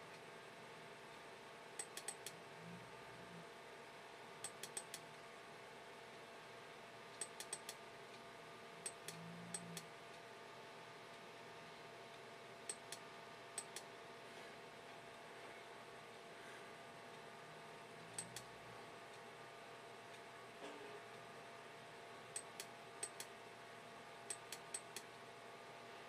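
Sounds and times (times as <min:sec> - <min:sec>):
low steady hum: 0:00.0 - 0:26.0
computer control clicks: 0:01.8 - 0:02.4, 0:04.4 - 0:05.0, 0:07.2 - 0:07.8, 0:18.1 - 0:18.5.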